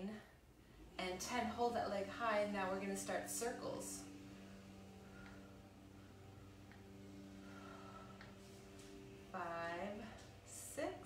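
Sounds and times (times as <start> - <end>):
faint hum of held tones: 0.0 - 11.0.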